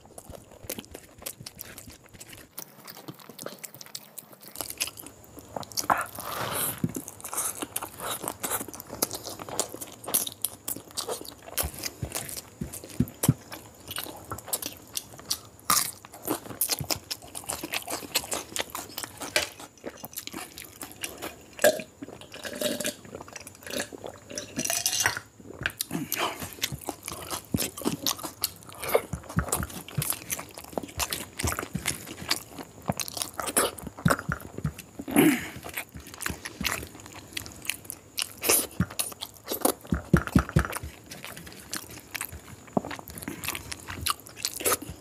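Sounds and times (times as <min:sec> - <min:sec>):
wet chewing and lip-smacking: 0:00.0 - 0:06.2, 0:06.8 - 0:24.2, 0:25.5 - 0:45.0.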